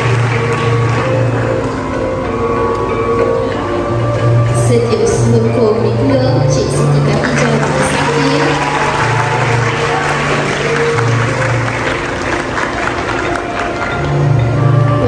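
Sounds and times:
audience applauding: 0:00.0 - 0:02.0, 0:07.0 - 0:14.4
background music: 0:00.0 - 0:15.0.

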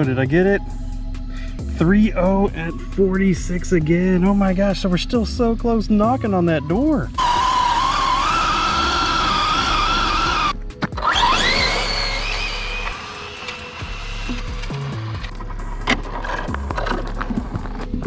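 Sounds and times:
background music: 0:00.0 - 0:18.0
electric motor whining: 0:07.2 - 0:18.0.

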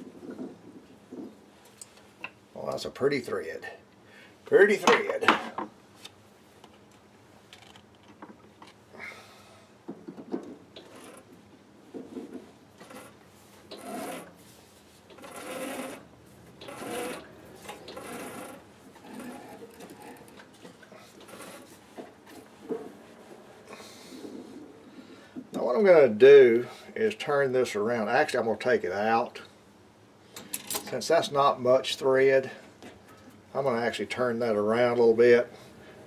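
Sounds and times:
threading die scraping brass: 0:15.1 - 0:21.8.

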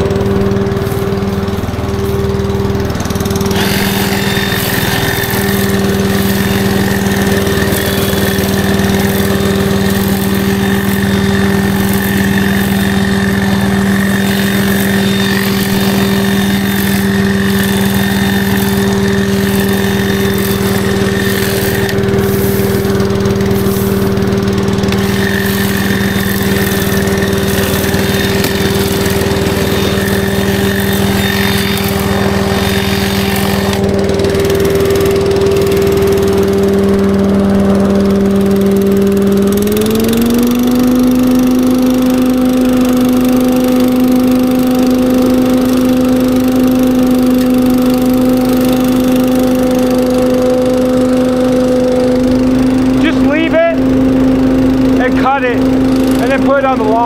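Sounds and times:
leaf vacuum petrol engine running: 0:00.0 - 0:57.0.

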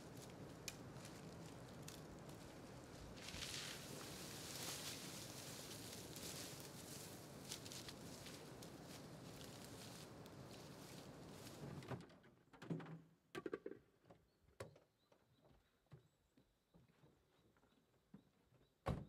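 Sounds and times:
person scrambling through dry grass: 0:00.0 - 0:11.7.

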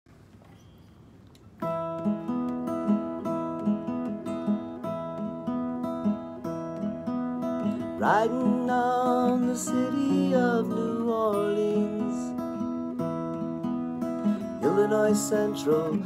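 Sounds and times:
acoustic guitar playing: 0:01.5 - 0:16.0.

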